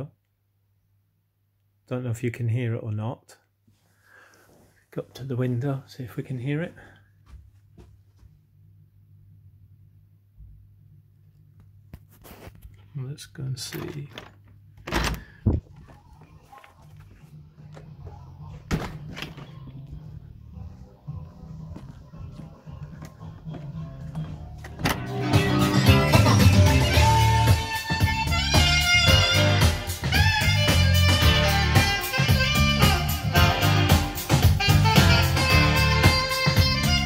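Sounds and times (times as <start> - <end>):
guitar music from hi-fi: 23.5 - 37.0.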